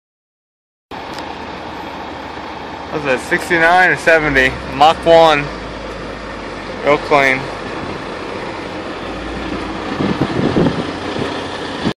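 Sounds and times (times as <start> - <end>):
diesel truck engine running: 0.9 - 12.0.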